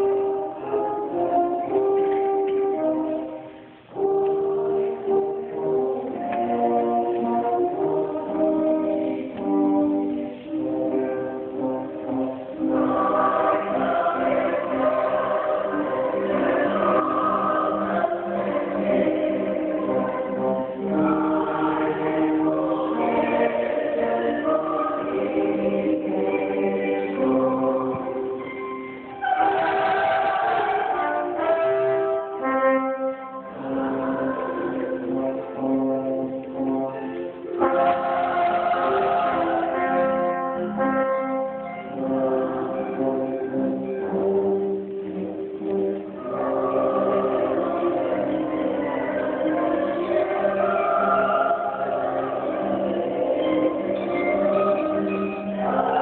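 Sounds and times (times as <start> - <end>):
church choir singing: 0.0 - 56.0.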